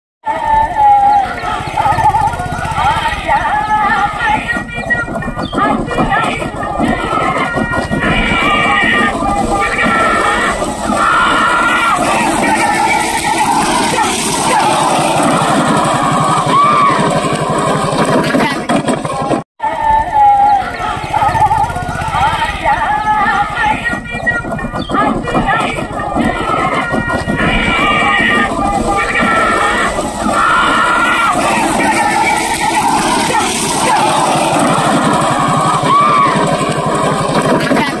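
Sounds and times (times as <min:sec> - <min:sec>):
men shouting: 0:00.3 - 0:24.3, 0:24.9 - 0:38.0
engine drone: 0:00.3 - 0:38.0
steady rumbling: 0:00.3 - 0:38.0
rushing wind noise: 0:24.4 - 0:38.0.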